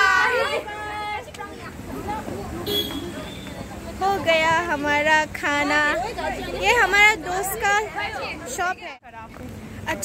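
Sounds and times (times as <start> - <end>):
indistinct group chatter: 0.0 - 10.0.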